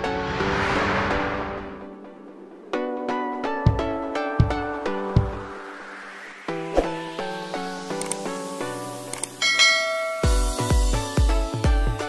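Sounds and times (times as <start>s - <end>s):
electronic music with heavy bass: 3.6s - 12.0s
notification bell chime: 9.4s - 10.6s.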